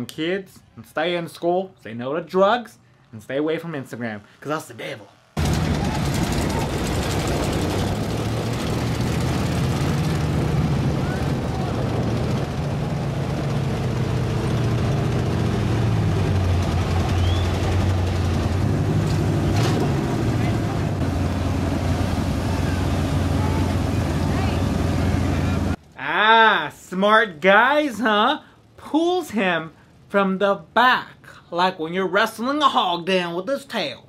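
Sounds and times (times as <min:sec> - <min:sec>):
truck engines running hard: 0:05.4 - 0:25.8
onlookers' voices: 0:22.3 - 0:25.8.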